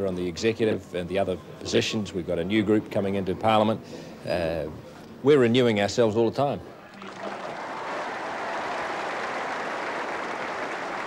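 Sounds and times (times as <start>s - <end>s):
audience applauding: 6.9s - 11.0s.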